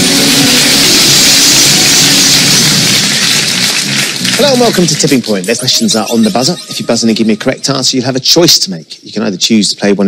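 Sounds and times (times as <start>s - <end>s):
game show theme music: 0.0s - 8.2s.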